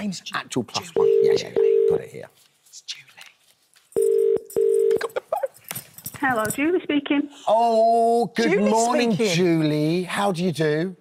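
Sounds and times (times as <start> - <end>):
telephone ringback tone: 4.0 - 5.0.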